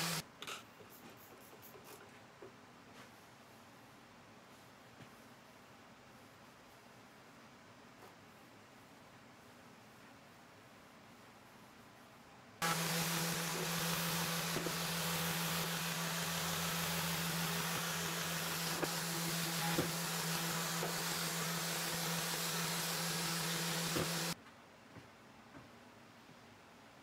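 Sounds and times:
dust extraction rushing noise: 0.0 - 0.2, 12.6 - 24.4
orbital sander on metal: 0.0 - 0.2, 12.6 - 24.4.

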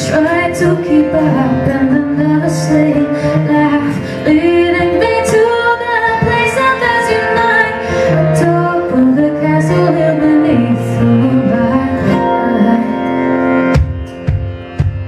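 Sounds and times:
woman singing: 0.0 - 13.6
acoustic guitar: 0.0 - 15.0.

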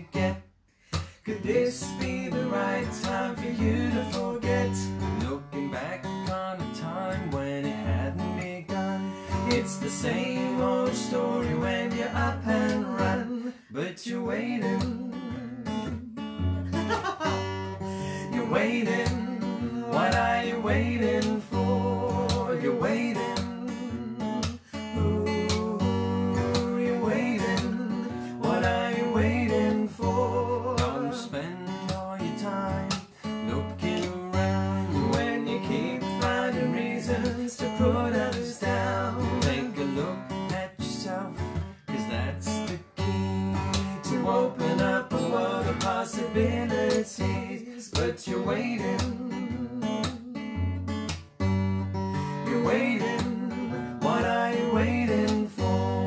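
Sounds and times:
acoustic guitar strumming: 0.0 - 56.0
woman and man singing: 1.0 - 50.6, 52.4 - 56.0.

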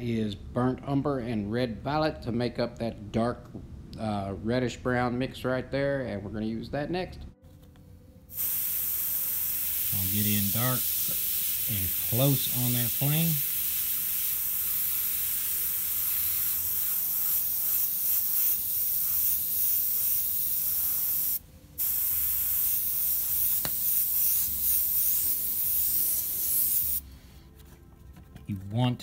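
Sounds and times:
airbrush air hiss: 8.3 - 27.5.

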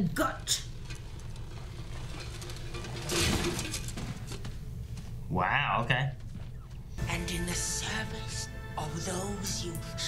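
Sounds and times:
soundtrack music: 7.0 - 10.0.

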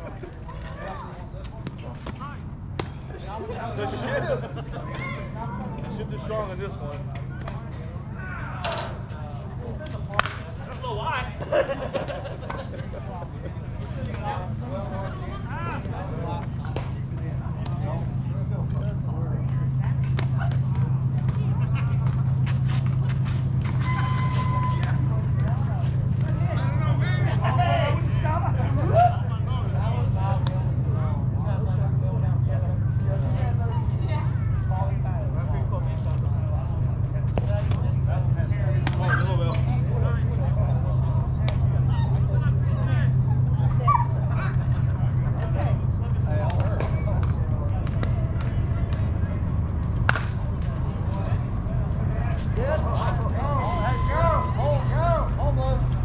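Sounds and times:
steady low hum: 0.0 - 56.0
voices: 0.0 - 56.0.

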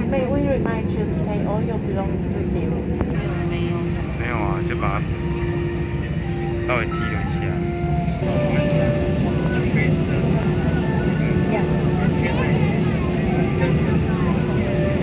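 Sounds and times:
airplane cabin rumble: 0.0 - 15.0
passenger voices: 0.0 - 15.0.

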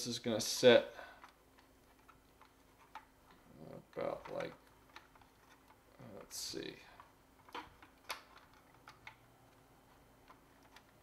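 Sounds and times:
plastic toy parts clicking: 0.4 - 6.4, 7.0 - 11.0.

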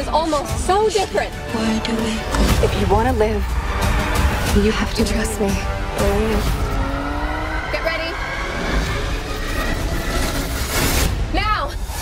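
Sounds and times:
car engine accelerating: 3.5 - 10.9.

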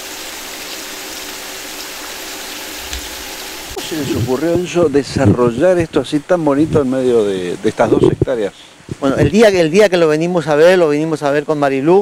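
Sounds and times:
stream running over rocks: 0.0 - 9.8.

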